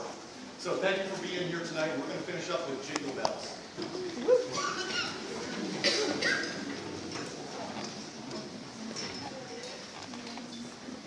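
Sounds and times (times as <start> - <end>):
audience murmuring: 2.0 - 11.0.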